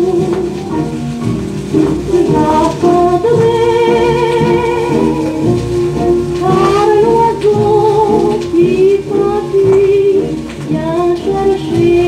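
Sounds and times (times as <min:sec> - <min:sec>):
old record of song with dance orchestra: 0:00.0 - 0:12.0.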